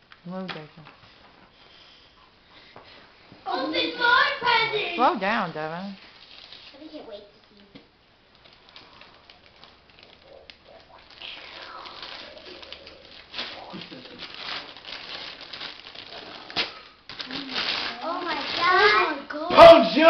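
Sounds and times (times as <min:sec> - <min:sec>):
excited voices: 0:03.5 - 0:05.0
wrapping paper tearing: 0:06.0 - 0:06.9, 0:08.3 - 0:19.2.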